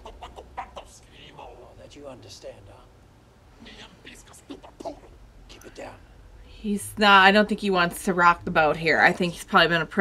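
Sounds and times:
steady low hum: 0.0s - 10.0s
faint whispered speech: 3.6s - 6.0s.

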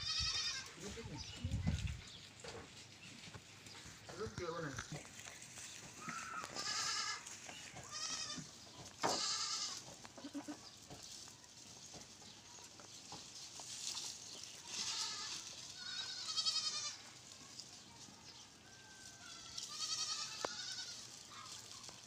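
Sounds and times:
goats bleating: 0.0s - 1.1s, 5.9s - 10.6s, 14.6s - 17.2s, 19.3s - 21.3s.

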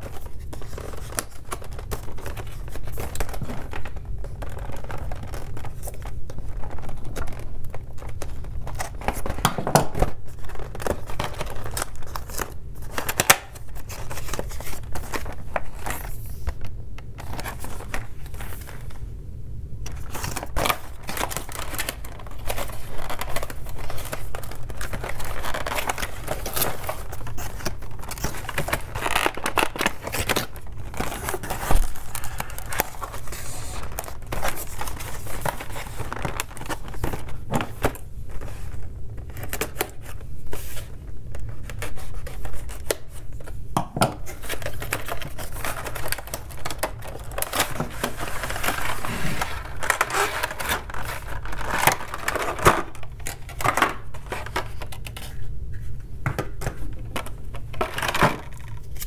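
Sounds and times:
plastic packaging crinkling: 0.0s - 19.1s, 19.7s - 59.0s.

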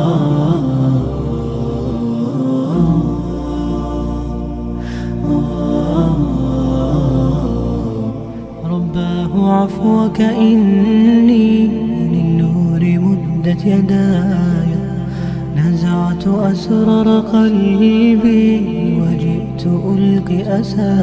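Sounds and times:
low steady drone: 0.0s - 21.0s
voices chanting and humming: 0.0s - 21.0s.

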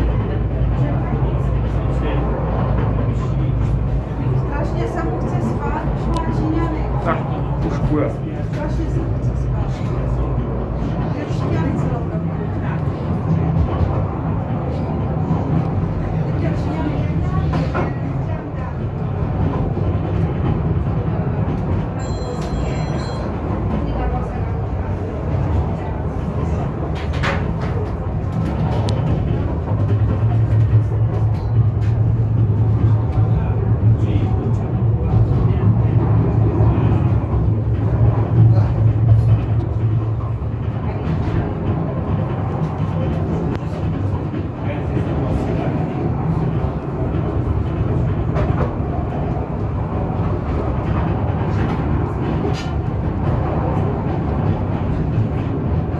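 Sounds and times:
funicular car rumbling on rails: 0.0s - 55.9s.

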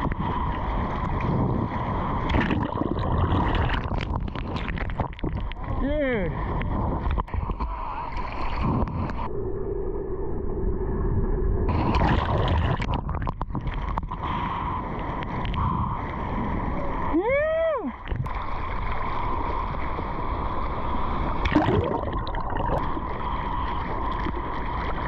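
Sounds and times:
water sloshing and splashing: 0.0s - 9.3s, 11.7s - 14.3s, 18.0s - 25.0s.

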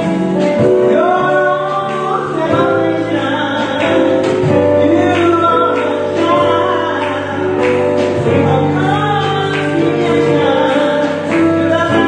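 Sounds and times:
gospel band playing: 0.0s - 12.0s
woman singing into a microphone: 0.0s - 12.0s.

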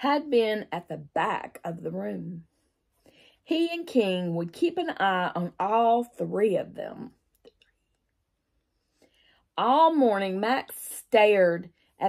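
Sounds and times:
woman speaking: 0.0s - 2.4s, 3.5s - 7.2s, 9.6s - 12.0s.

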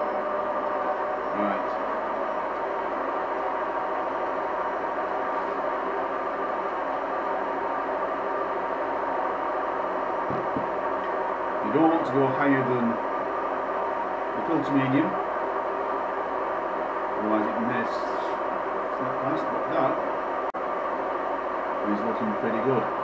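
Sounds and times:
steady hum with held tones: 0.0s - 23.0s.

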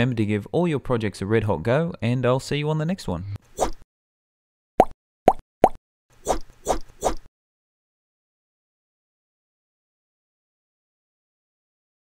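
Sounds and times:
pop sound effects: 4.8s - 7.2s.

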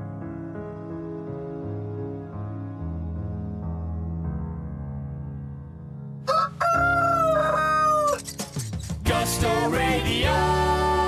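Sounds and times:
soft sleepy music: 0.0s - 11.0s
rooster crowing: 6.2s - 8.4s.

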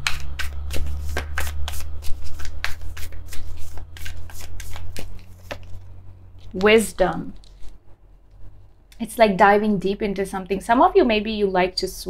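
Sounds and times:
cards being shuffled: 0.0s - 7.8s.

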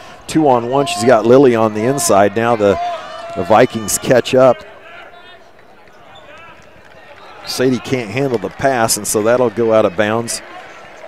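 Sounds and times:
arena ambience: 0.0s - 11.0s
sneakers squeaking on floor: 5.9s - 6.6s.

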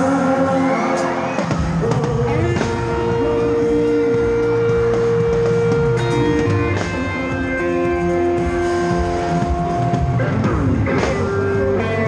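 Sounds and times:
live band music: 0.0s - 12.0s
electric guitar sustained notes: 1.9s - 12.0s
guitar notes sliding down: 2.1s - 12.0s.

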